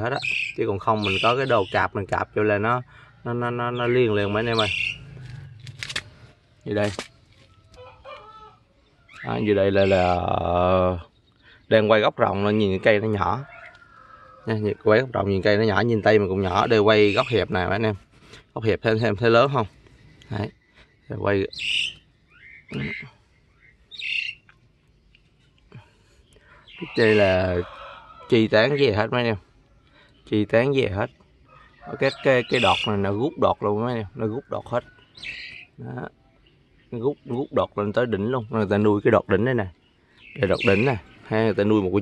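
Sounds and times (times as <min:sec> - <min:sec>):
faint bird call: 0:20.2 - 0:24.5.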